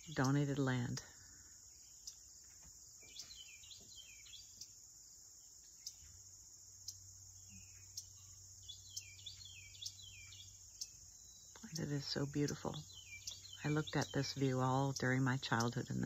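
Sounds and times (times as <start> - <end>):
bird chirping: 0.0 - 16.0
high-pitched insect chorus: 0.0 - 16.0.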